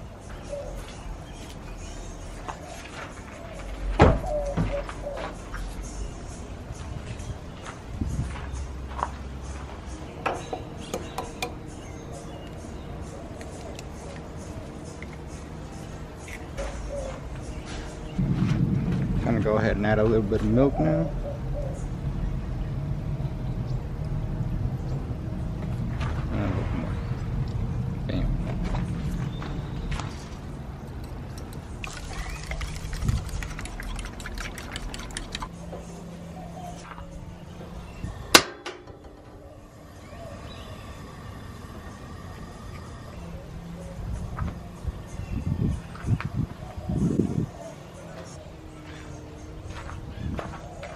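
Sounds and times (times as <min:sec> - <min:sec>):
quiet background music: 0:00.0 - 0:50.9
fork beating eggs in a bowl: 0:31.3 - 0:35.5
milk pouring into a bowl: 0:31.8 - 0:35.5.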